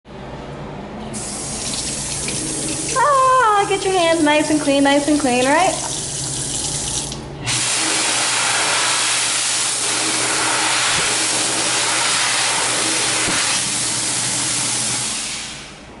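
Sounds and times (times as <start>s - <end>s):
hand dryer air rush: 1.1s - 16.0s
tap water running over hands: 1.2s - 7.2s.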